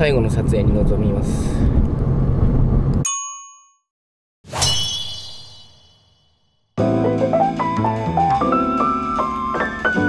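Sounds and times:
bell-like ding: 3.1 - 3.9, 4.5 - 6.6
shimmering metallic chime: 4.6 - 6.5.

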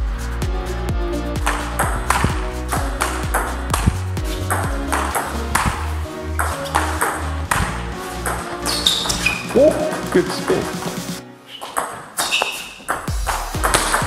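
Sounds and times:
electronic music with steady beat: 0.0 - 11.3, 12.8 - 14.0
table tennis ball clicking: 1.5 - 5.8, 6.4 - 9.5, 11.6 - 14.0.

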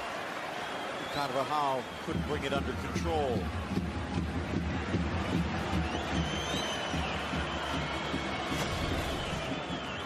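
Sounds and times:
long sliding whistles: 6.1 - 10.0.

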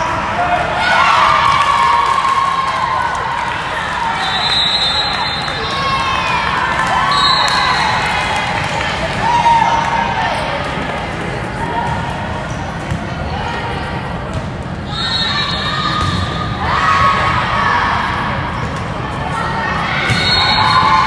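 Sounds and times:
people shouting and cheering: 0.0 - 12.4, 14.9 - 21.0.

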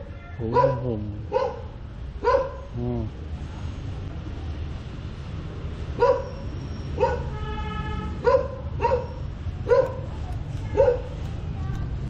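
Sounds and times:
dog held call: 0.2 - 1.6
dog barking: 0.4 - 2.7, 6.0 - 7.4, 8.2 - 10.1, 10.7 - 11.2.

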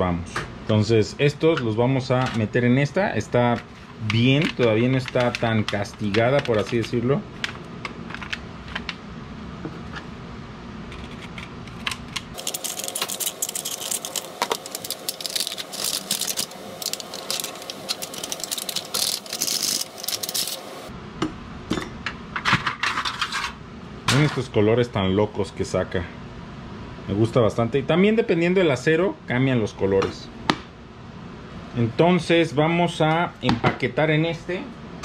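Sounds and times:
foil crinkling and crackling: 12.3 - 20.9.

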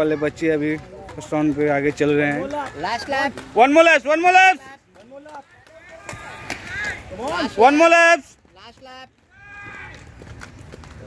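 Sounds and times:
people shouting: 2.5 - 8.3, 9.3 - 10.2.

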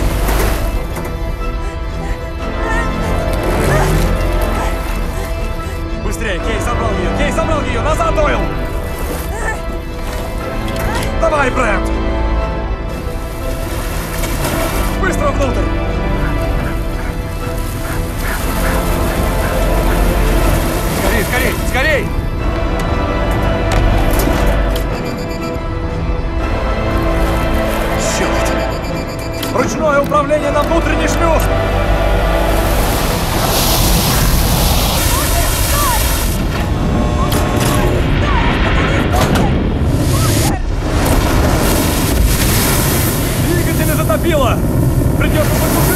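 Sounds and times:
deep constant rumble: 0.0 - 25.0, 30.7 - 45.9
held orchestral chords: 0.0 - 40.0
loud rush of water: 12.9 - 22.4, 31.5 - 38.2, 39.5 - 45.9.

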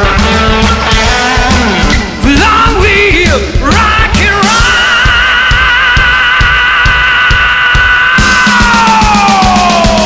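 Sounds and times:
bass drum beat: 0.0 - 10.0.

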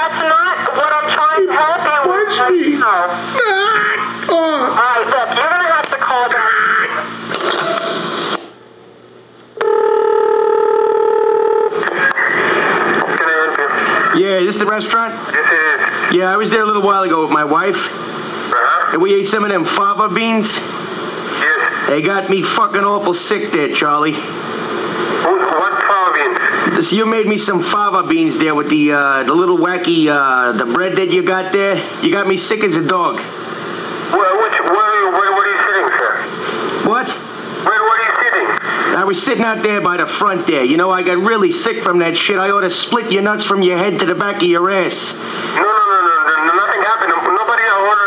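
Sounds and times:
man talking over phone: 0.0 - 7.1, 13.1 - 20.7, 21.4 - 24.3, 25.2 - 33.3, 34.1 - 48.0
noisy hiss: 0.0 - 9.6, 11.6 - 48.0.

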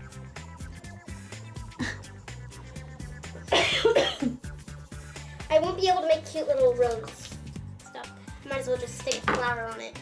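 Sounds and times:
background music: 0.0 - 10.0
person coughing loudly: 3.4 - 4.4.

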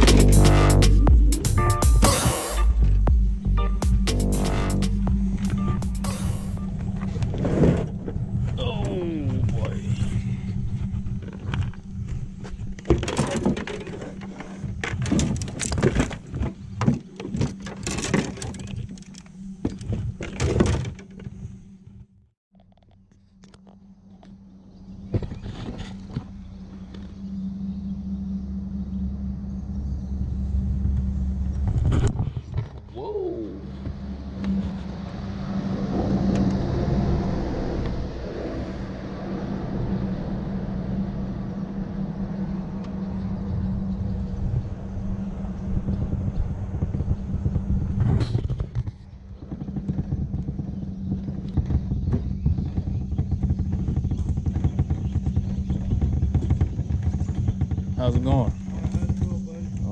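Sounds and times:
vehicle engine rumbling: 0.0 - 59.9.

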